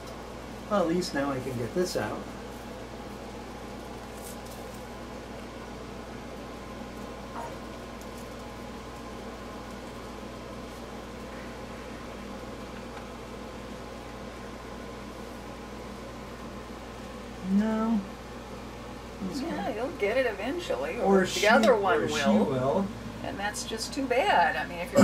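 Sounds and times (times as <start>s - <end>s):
room hum with hiss: 0.0s - 25.0s.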